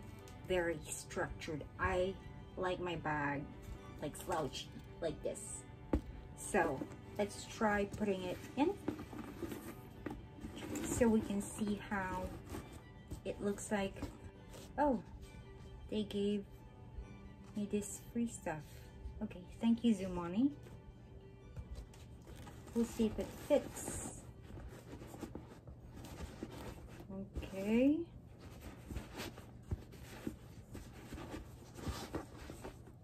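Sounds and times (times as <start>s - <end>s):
quiet background music: 0.0s - 33.0s
bag handling noise: 5.9s - 15.1s
fabric rustling and rubbing: 6.5s - 15.7s, 21.8s - 33.0s.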